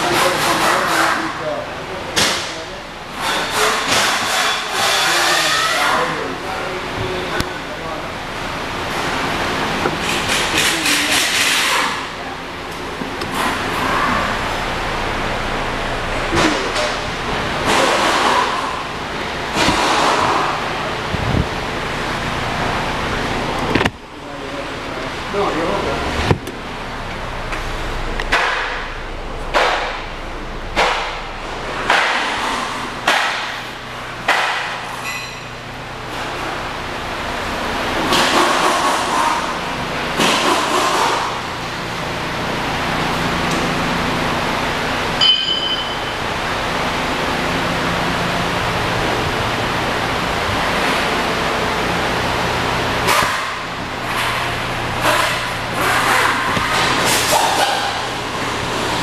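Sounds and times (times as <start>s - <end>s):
steady low hum: 0.0s - 59.0s
car engine idling: 0.2s - 4.8s, 5.8s - 59.0s
short high beep: 45.2s - 46.2s.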